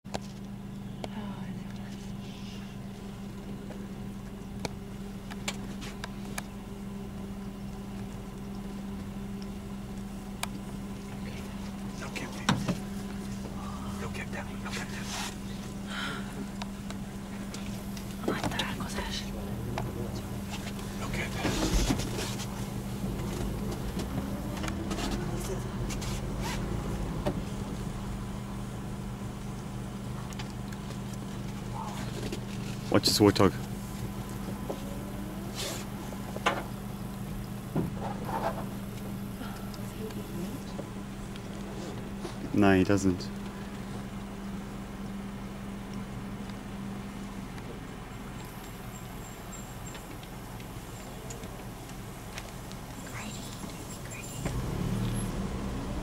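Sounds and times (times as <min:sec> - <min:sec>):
vehicle engine idling: 0:00.1 - 0:56.0.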